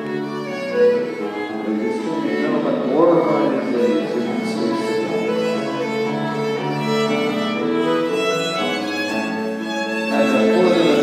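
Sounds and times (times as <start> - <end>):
dance band playing a waltz: 0.0 - 11.0.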